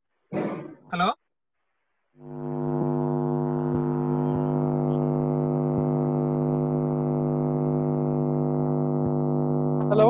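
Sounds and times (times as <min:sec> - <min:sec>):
low-pitched buzzing drone: 0:02.2 - 0:10.0.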